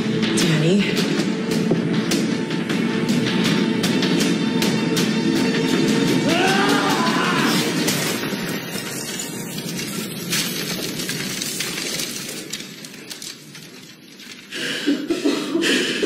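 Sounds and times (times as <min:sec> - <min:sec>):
debris pattering down: 0:05.5 - 0:14.5
man breathing heavily: 0:14.5 - 0:16.0.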